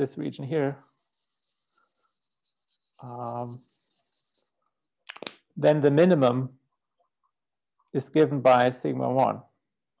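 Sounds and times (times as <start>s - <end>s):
highlighter scribbling on paper: 0.6s - 4.6s.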